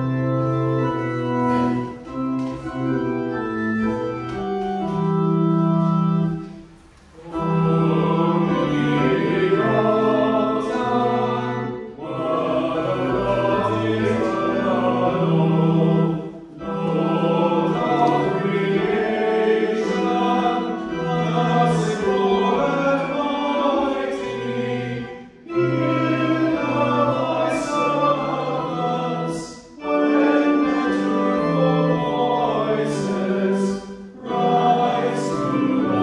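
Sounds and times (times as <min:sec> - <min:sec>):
congregation singing a hymn: 0:00.0 - 0:36.0
organ: 0:00.0 - 0:36.0.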